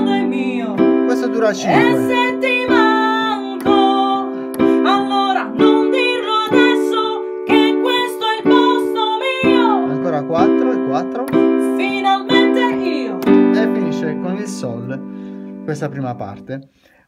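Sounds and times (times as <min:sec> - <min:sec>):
woman singing: 0:00.0 - 0:01.0, 0:01.7 - 0:10.0, 0:11.4 - 0:13.5
digital piano chords: 0:00.0 - 0:16.7.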